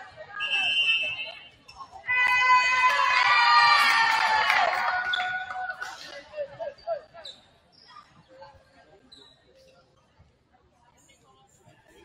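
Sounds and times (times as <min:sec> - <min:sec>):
players shouting and cheering: 0:02.0 - 0:07.2
sneakers squeaking on gym floor: 0:06.7 - 0:08.3, 0:09.1 - 0:09.9.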